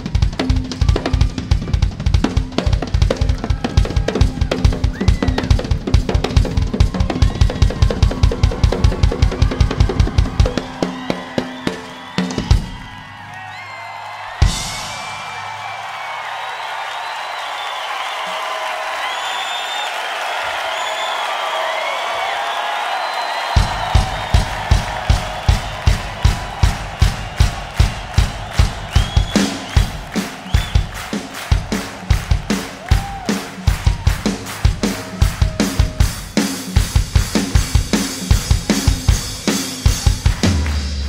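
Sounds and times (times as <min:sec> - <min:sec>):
drum kit solo: 0:00.0 - 0:13.0, 0:14.4 - 0:15.6, 0:23.5 - 0:41.0
crowd cheering and whistling: 0:00.7 - 0:02.1, 0:03.1 - 0:41.0
steady bass drum beat: 0:23.6 - 0:41.0.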